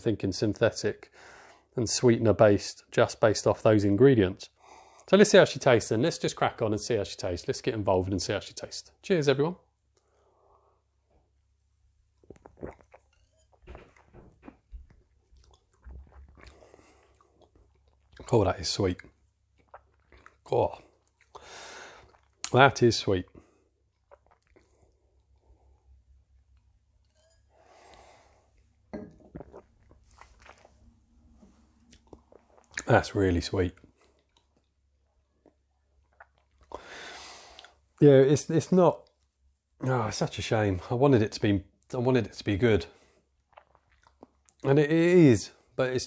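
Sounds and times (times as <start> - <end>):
wet mouth clicks and lip smacks: 12.2 - 13.5, 19.6 - 20.4, 24.0 - 25.3, 35.4 - 36.8, 43.5 - 44.7
person sipping: 12.2 - 18.3, 19.6 - 22.5, 23.3 - 26.0, 27.1 - 32.9, 35.4 - 37.8
person swallowing and lip smacking: 12.2 - 18.3, 19.6 - 21.4, 24.0 - 25.4, 29.1 - 32.9, 34.0 - 36.8, 43.4 - 44.7.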